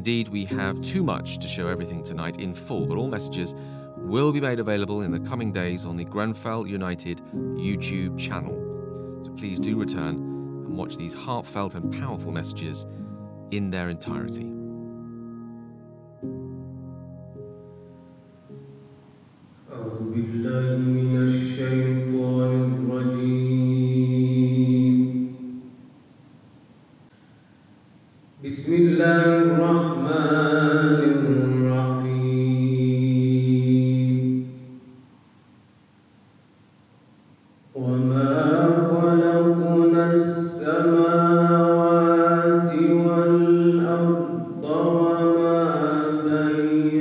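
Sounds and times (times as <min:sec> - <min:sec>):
man chanting: 0:00.0 - 0:08.6, 0:09.3 - 0:12.9, 0:13.5 - 0:14.6, 0:19.7 - 0:25.3, 0:28.4 - 0:34.5, 0:37.8 - 0:47.0.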